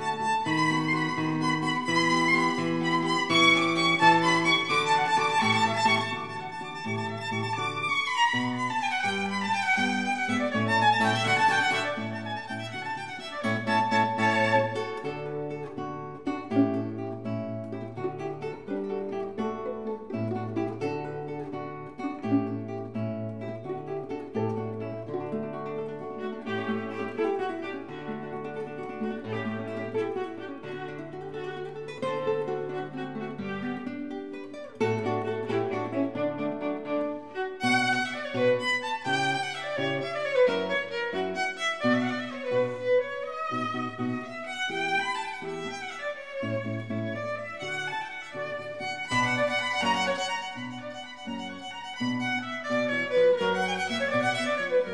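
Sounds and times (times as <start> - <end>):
violin quick runs: 0.0 - 15.4, 25.8 - 34.2, 34.8 - 54.9
classical guitar chords: 0.0 - 54.9.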